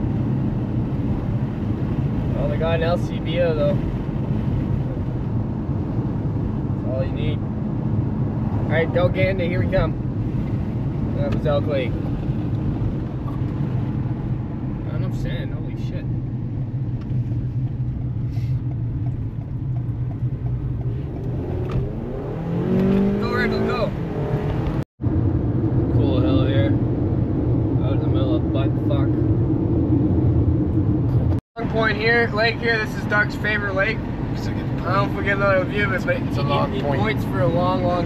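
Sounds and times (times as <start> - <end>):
car cabin road and engine noise: 0.0 - 38.0.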